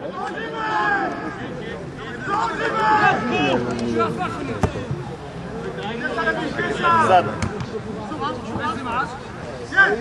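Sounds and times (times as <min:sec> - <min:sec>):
voices shouting: 0:00.0 - 0:04.6.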